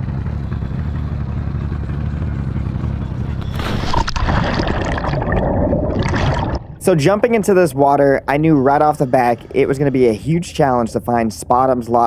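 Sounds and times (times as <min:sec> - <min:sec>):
diver splashing into water: 0:03.4 - 0:06.8
underwater bubbling: 0:03.7 - 0:06.9.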